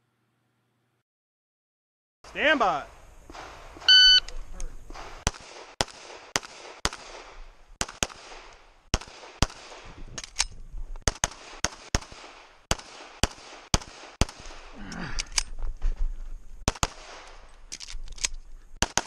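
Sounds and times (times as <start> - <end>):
shot timer beep: 3.9 - 4.3
pistol shots: 4.9 - 10.0, 11.0 - 14.7, 16.7 - 17.5, 18.8 - 19.0.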